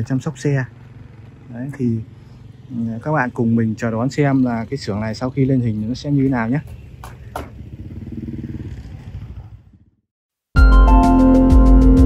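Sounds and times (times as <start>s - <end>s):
small engine pulsing: 0.0s - 10.0s.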